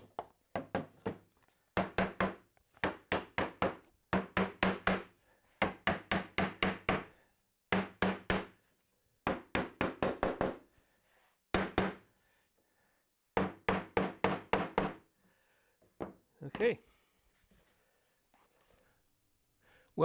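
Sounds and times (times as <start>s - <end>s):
mallet striking wood: 1.8s - 7.1s, 7.7s - 8.5s, 13.4s - 15.0s.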